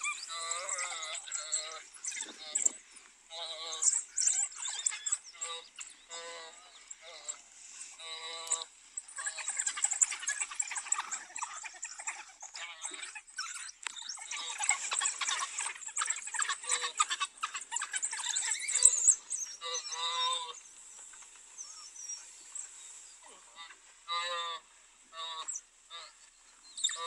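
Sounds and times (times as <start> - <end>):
wild dogs twittering and chirping: 0.0 - 27.0.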